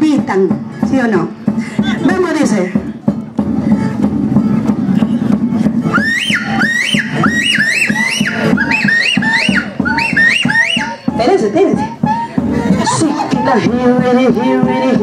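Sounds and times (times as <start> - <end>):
folk band music: 0.0 - 15.0.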